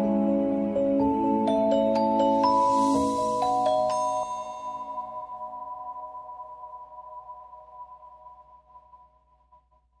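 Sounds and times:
mallet percussion chime ringing: 1.5s - 6.2s.

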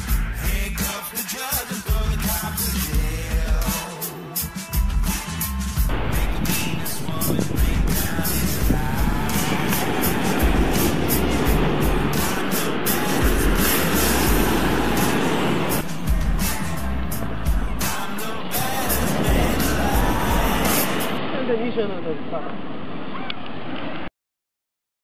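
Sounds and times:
music with heavy beat and deep bass: 0.0s - 21.2s.

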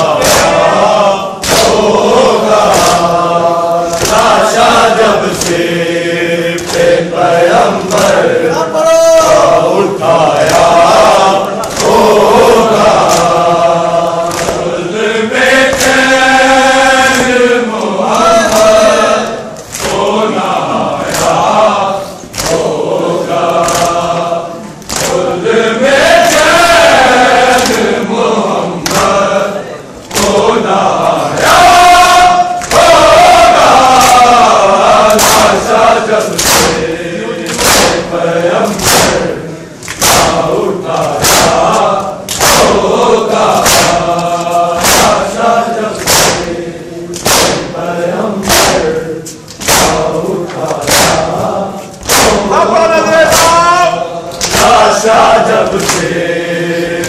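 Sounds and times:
men chanting a lament: 0.0s - 57.0s
hands slapping bare chests: 0.1s - 0.8s, 1.4s - 3.3s, 3.9s - 5.7s, 6.5s - 7.1s, 7.8s - 8.3s, 10.4s - 14.8s, 15.5s - 16.1s, 19.6s - 20.2s, 21.0s - 21.6s, 22.3s - 22.8s, 23.4s - 24.1s, 24.8s - 25.3s, 26.0s - 27.9s, 28.8s - 29.2s, 30.1s - 30.4s, 31.4s - 36.8s, 37.5s - 38.1s, 38.7s - 46.5s, 47.2s - 47.7s, 48.4s - 51.4s, 52.0s - 52.5s, 53.2s - 53.7s, 54.3s - 56.1s.

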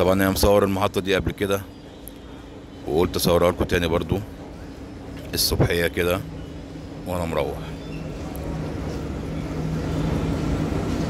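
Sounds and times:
train low hum: 0.0s - 11.0s.

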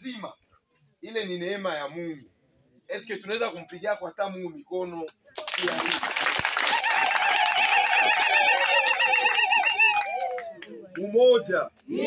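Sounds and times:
woman ululating: 6.7s - 10.6s.

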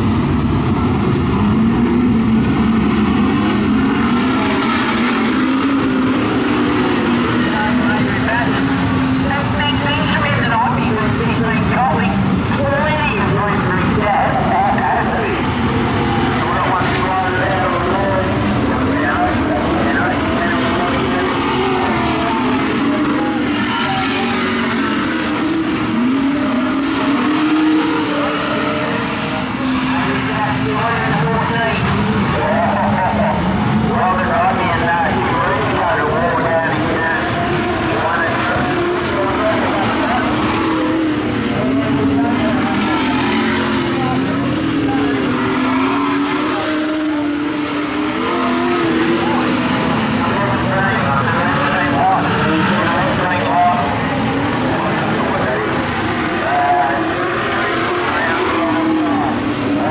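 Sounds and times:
racing car engines revving: 0.0s - 59.9s.

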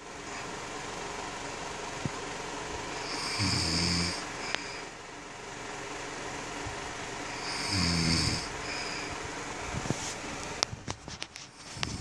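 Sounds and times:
man snoring: 2.9s - 4.9s, 7.3s - 9.1s.

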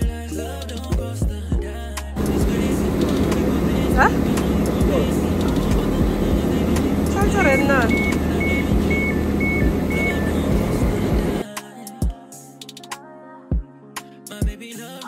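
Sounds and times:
train engine rumble and hum: 2.2s - 11.4s
door warning beeps: 6.6s - 11.4s.

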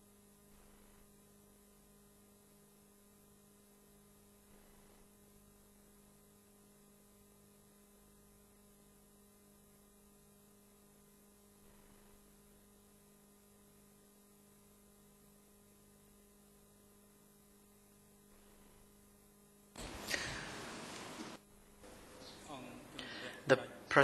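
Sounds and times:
faint electrical hum: 0.0s - 24.0s.

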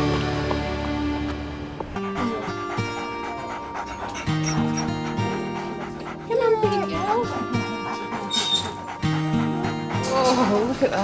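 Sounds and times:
background music: 0.0s - 11.0s
dog panting: 1.8s - 11.0s.

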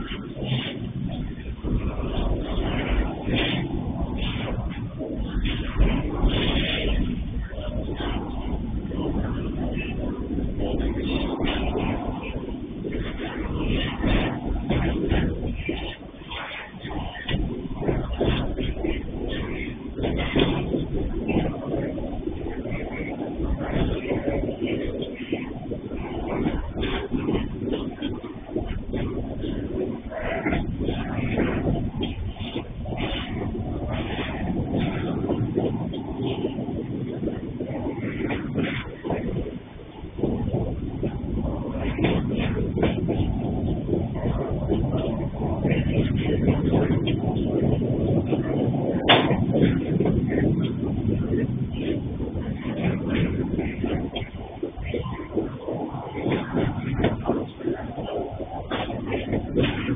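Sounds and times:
train wheels rumbling on rails: 0.0s - 59.9s.

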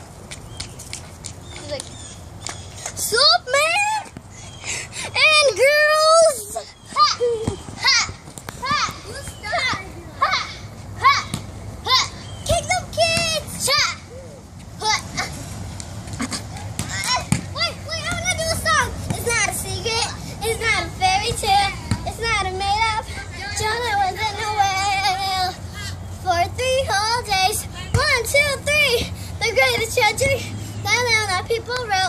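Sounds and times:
girls shouting and squealing: 5.0s - 15.4s.

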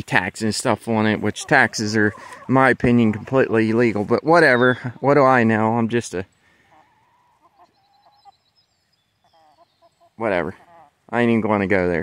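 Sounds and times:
hens clucking: 0.0s - 8.6s, 9.2s - 11.6s.

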